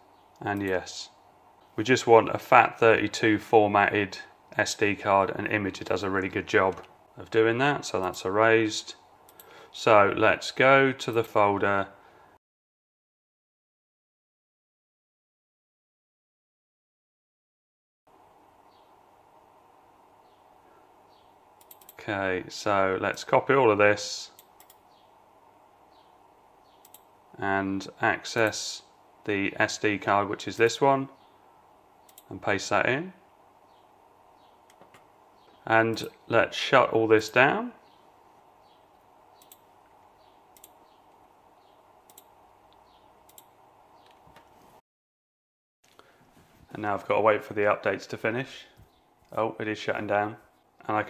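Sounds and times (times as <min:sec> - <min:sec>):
small clicks: 0:21.6 - 0:22.0, 0:24.4 - 0:24.8, 0:26.8 - 0:27.1, 0:32.0 - 0:32.3, 0:38.9 - 0:41.3, 0:42.0 - 0:44.5.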